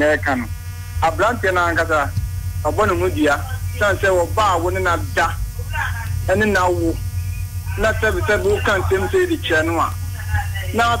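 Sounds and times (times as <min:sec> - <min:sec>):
person talking: 0:00.0 - 0:07.0, 0:07.7 - 0:11.0
low electrical mains hum: 0:00.0 - 0:11.0.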